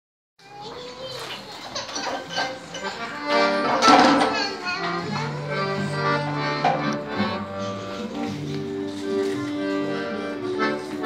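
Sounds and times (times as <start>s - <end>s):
children chattering: 0.4s - 11.0s
piano accordion playing chords: 1.4s - 11.0s.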